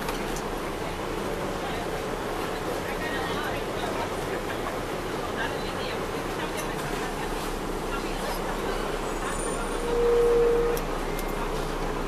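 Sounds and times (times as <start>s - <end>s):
bus engine drone: 0.0s - 12.0s
road noise: 0.0s - 12.0s.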